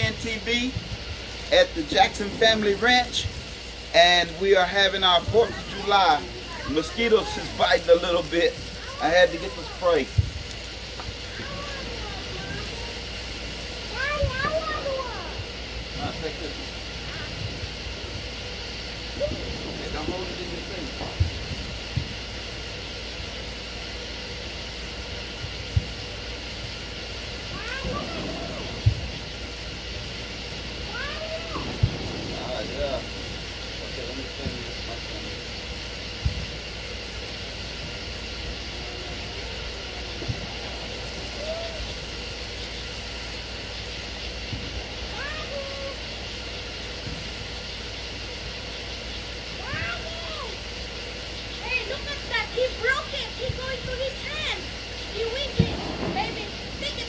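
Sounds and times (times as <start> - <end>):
distant people and children calling: 0.0 - 57.0
steady high hum: 0.0 - 57.0.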